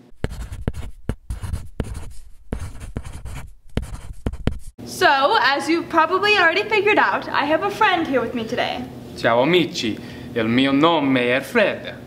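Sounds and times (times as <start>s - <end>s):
pencil scratching on paper: 0.0s - 4.8s.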